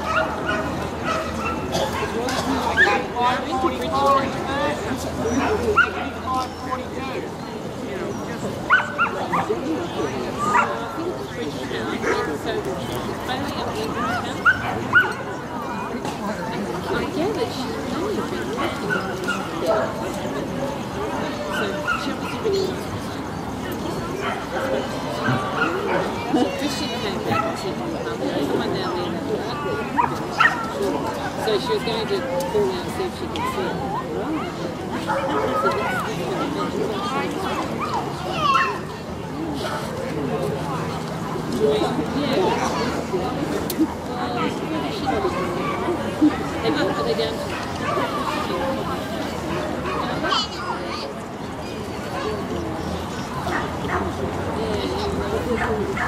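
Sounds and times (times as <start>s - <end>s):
crowd chatter: 0.0s - 56.0s
people talking: 0.0s - 56.0s.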